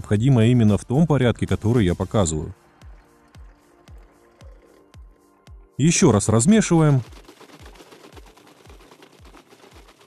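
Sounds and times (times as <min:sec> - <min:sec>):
liquid sloshing in plastic bottle: 0:06.9 - 0:10.0.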